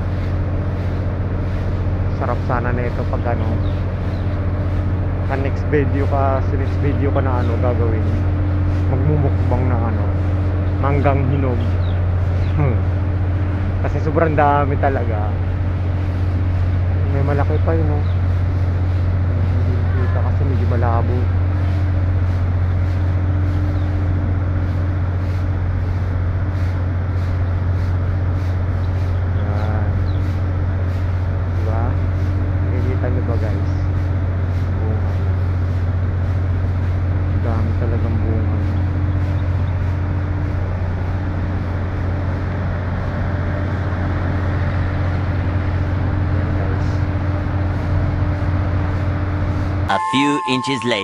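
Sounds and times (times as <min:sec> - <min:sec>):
low mechanical hum: 0:00.0 - 0:50.0
constant hiss: 0:00.0 - 0:51.0.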